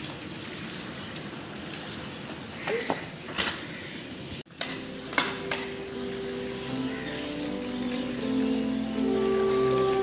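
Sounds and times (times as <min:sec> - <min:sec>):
bicycle creaking and clicking: 0:00.0 - 0:10.0.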